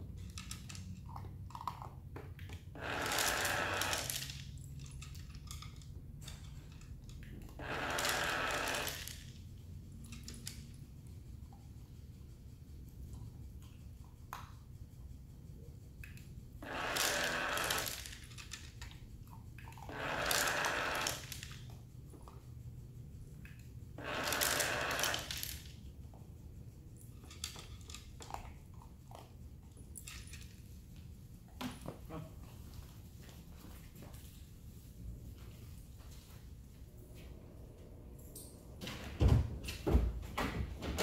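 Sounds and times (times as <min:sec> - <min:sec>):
puppy eating from plastic tray: 0:00.2 - 0:02.6
dispenser motor whirring: 0:02.7 - 0:04.3, 0:07.4 - 0:09.3, 0:16.5 - 0:18.8, 0:19.7 - 0:21.6, 0:23.5 - 0:25.6
kibble rattling into tray: 0:17.0 - 0:19.0.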